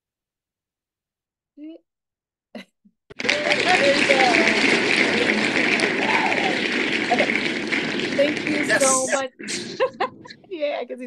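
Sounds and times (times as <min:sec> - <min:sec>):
crowd clapping and cheering: 0:03.1 - 0:09.7.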